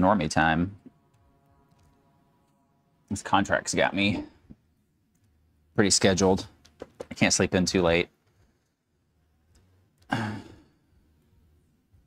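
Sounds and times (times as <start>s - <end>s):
man sighing: 10.1s - 10.7s.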